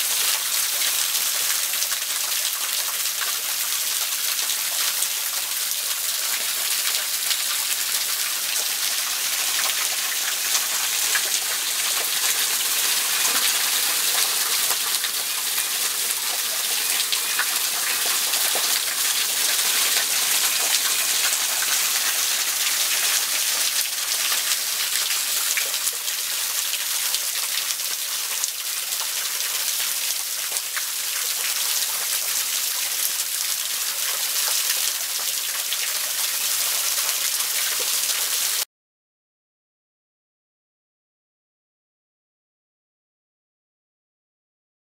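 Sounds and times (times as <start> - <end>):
small waterfall splashing on rocks: 0.0 - 38.7.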